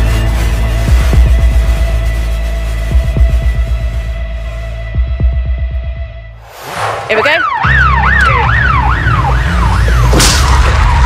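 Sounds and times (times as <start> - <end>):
heavy music bass line: 0.0 - 6.3
police siren wailing: 7.1 - 11.0.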